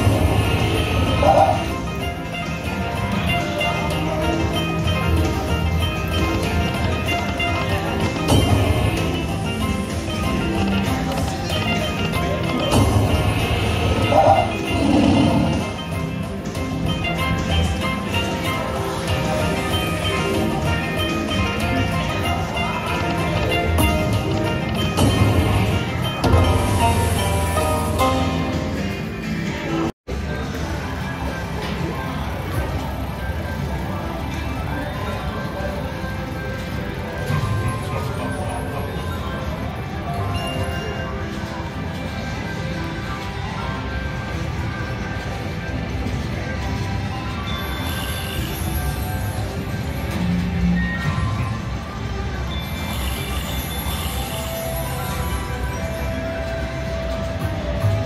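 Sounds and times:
slot machine reels spinning: 0.0 - 28.6
slot machine bonus music: 0.0 - 29.4.

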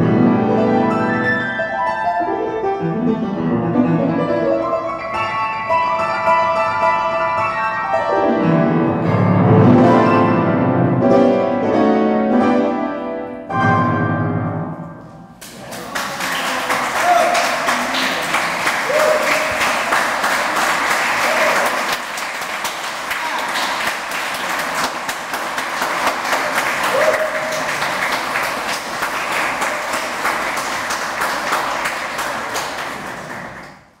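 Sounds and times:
audience applauding: 15.4 - 34.0.

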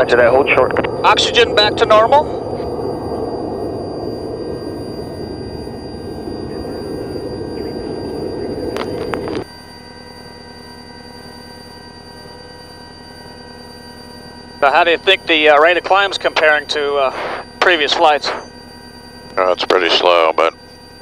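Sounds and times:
jet engine and airflow noise: 0.0 - 10.5, 14.5 - 18.6
faint even tones: 0.0 - 17.8
quiet steady hum: 0.0 - 20.8.

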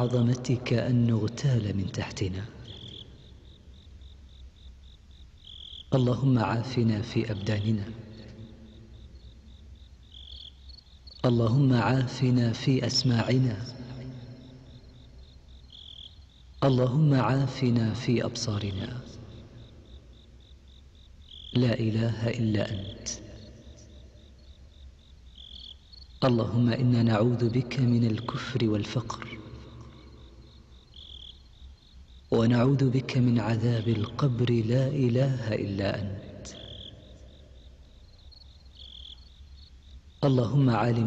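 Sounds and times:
faint insect chirping: 0.0 - 41.0
faint low hum: 0.0 - 41.0.

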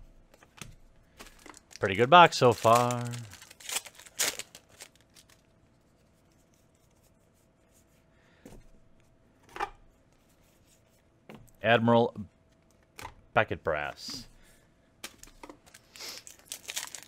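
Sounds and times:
trading cards rustling: 0.4 - 7.0, 15.0 - 17.0
foil wrapper tearing: 1.4 - 5.4, 15.7 - 17.0.

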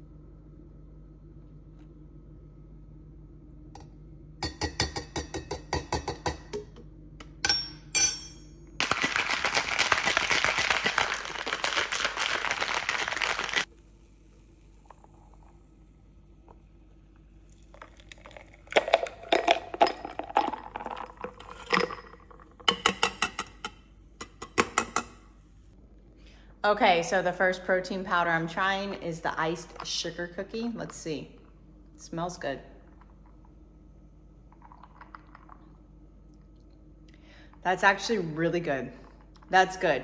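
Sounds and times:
ice rattling in cocktail shaker: 8.8 - 13.7
drink pouring into glass: 17.5 - 22.8, 34.5 - 35.9.

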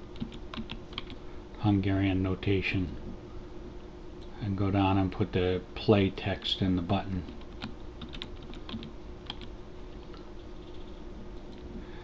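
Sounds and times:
computer keyboard typing: 0.1 - 1.2, 7.3 - 11.6.

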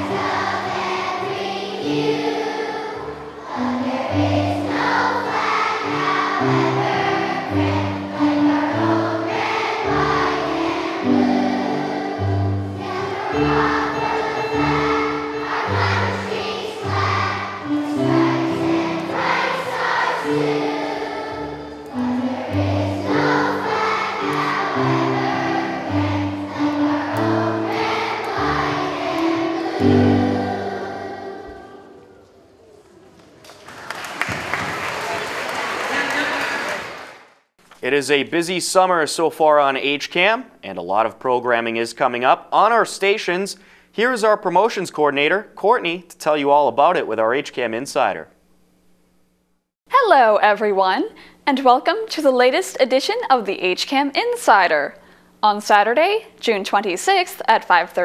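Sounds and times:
instrumental accompaniment: 0.0 - 32.0
children singing in chorus: 0.0 - 32.4.

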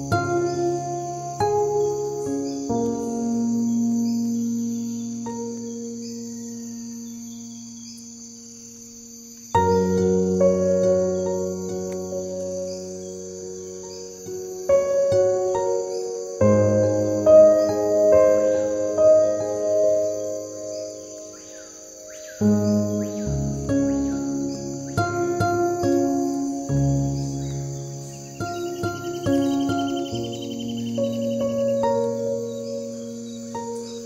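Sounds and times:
calm piano and guitar music: 0.0 - 34.0
crickets chirping: 0.0 - 34.0.

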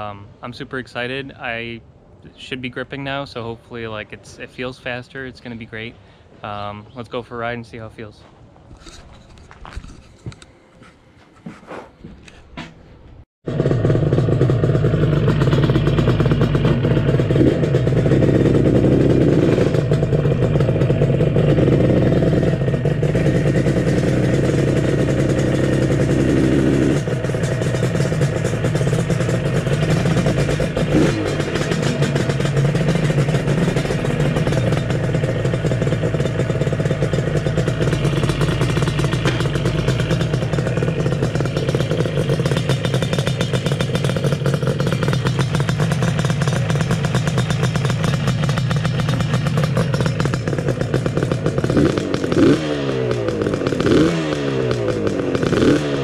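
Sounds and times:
motorcycle engine running: 13.4 - 56.0.

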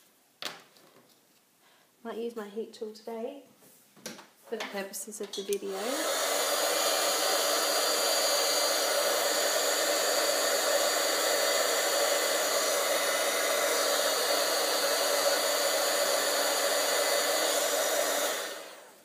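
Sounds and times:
heat tool blowing air: 5.5 - 19.0.

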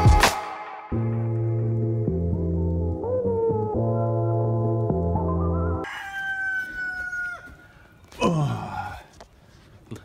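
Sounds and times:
rooster crowing: 5.8 - 7.9.

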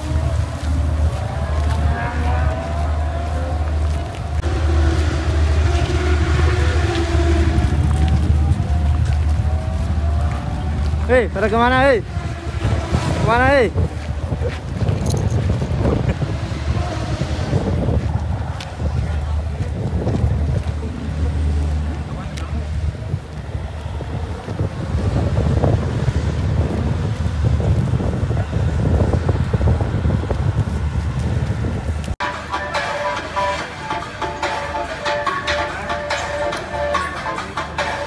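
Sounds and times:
wind buffeting microphone: 0.0 - 32.2
background voices: 0.0 - 38.0
music: 32.2 - 38.0.

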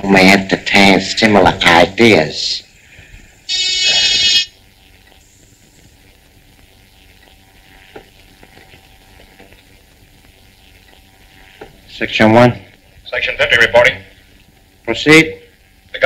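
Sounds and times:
film soundtrack hiss and crackle: 0.0 - 16.0
loud electric buzz: 0.0 - 16.0.

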